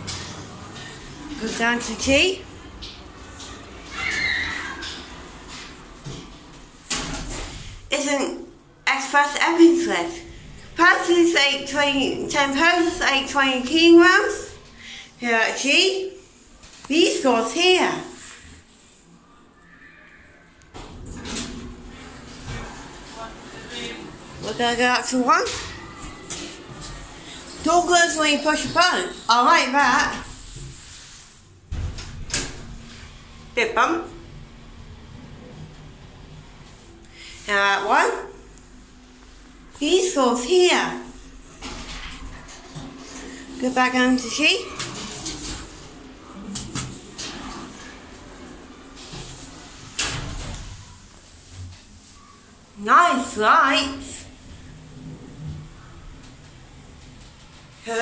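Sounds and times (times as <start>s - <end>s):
lift doors rumbling shut: 0.0s - 7.9s, 20.7s - 28.0s
lift door squeal: 3.9s - 5.3s.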